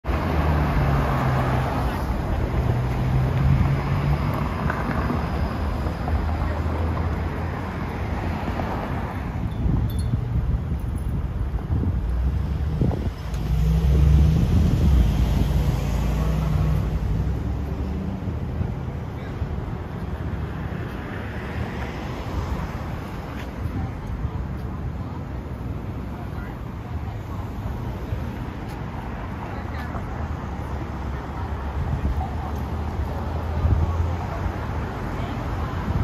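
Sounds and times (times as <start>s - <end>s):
traffic rumble: 0.0s - 36.0s
wind buffeting microphone: 9.3s - 15.8s.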